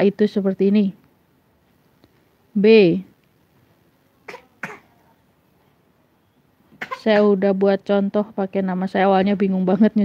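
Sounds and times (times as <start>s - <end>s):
woman coughing quietly: 4.3s - 5.0s, 6.8s - 7.2s.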